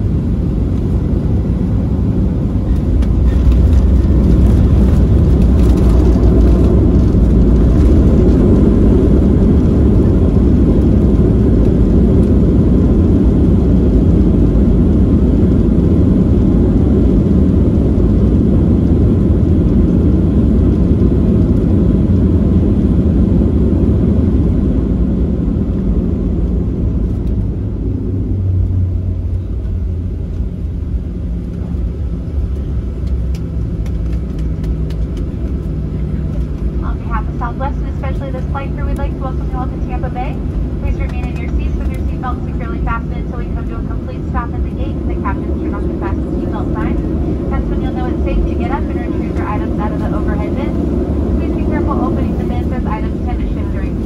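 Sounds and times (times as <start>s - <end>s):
airplane engines and wheels rumbling: 0.0s - 54.0s.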